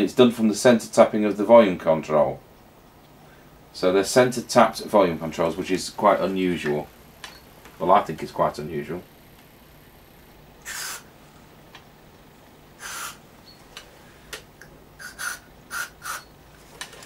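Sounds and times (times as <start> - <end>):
aerosol spray hisses: 10.6 - 11.1, 12.8 - 13.2, 15.0 - 16.3.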